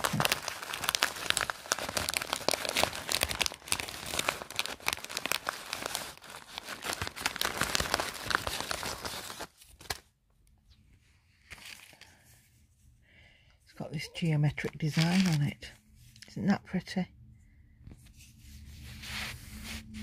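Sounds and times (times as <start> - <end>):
plastic sleeve crinkling: 0.0 - 10.0, 14.6 - 15.7.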